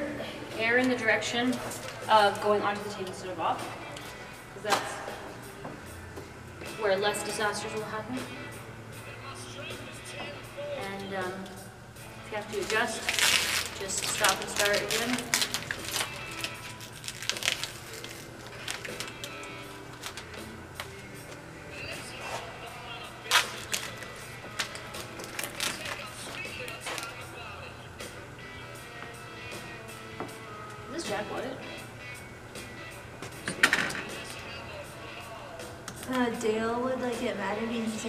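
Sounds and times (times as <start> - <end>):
quiet background music: 0.0 - 38.0
wrap film clicks and rustles: 12.5 - 21.4, 23.3 - 27.2.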